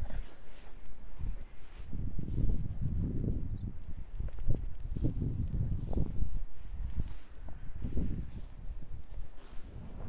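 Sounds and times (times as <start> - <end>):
footsteps in deep snow: 0.0 - 10.0.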